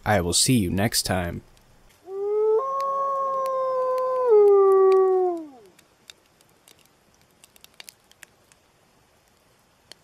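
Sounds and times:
wolf howling: 2.1 - 5.7.

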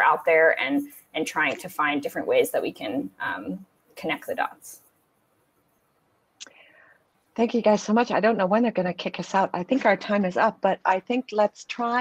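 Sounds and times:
faint breath: 6.4 - 7.2.

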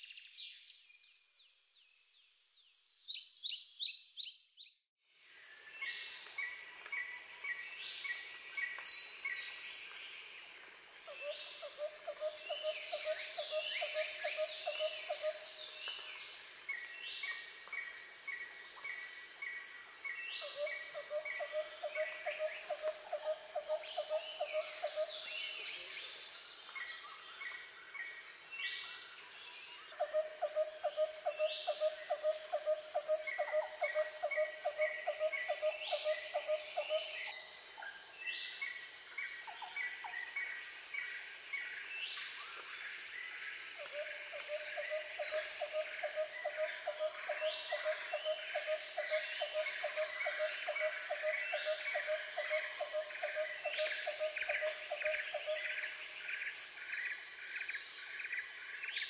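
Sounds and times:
high insect drone: 5.2 - 59.0.

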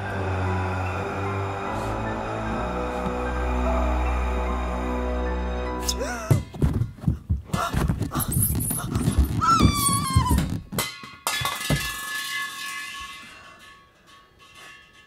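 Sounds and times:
low tense score drone: 0.0 - 6.0
sustained musical tones: 0.0 - 6.2
heavy thumps and knocks: 6.3 - 10.9.

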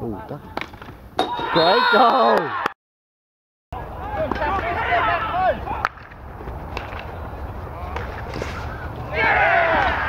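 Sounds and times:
players shouting: 1.2 - 2.8, 3.8 - 6.0, 6.8 - 10.0.

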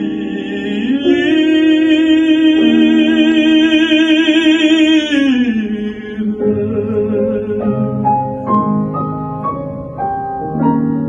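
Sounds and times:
man singing classically: 0.0 - 8.5
grand piano chords: 0.0 - 11.0.

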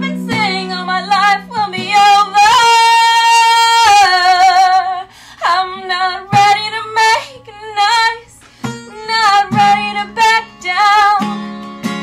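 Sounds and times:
woman singing: 0.0 - 11.6
strummed acoustic guitar: 0.0 - 12.0.

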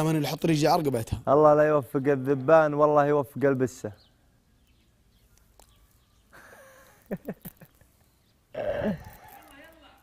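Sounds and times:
man laughing: 6.4 - 8.0.

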